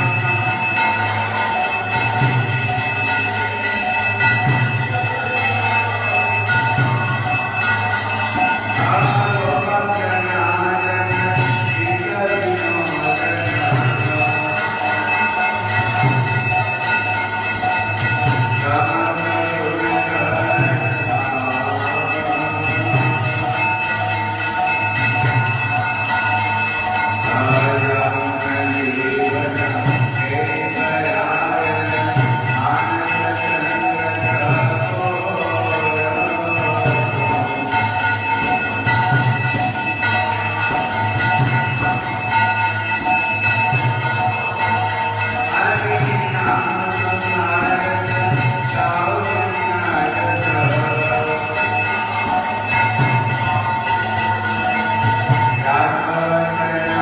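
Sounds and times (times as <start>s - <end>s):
devotional music: 0.0s - 57.0s
small cymbals jingling: 0.0s - 57.0s
temple bells ringing: 0.0s - 57.0s.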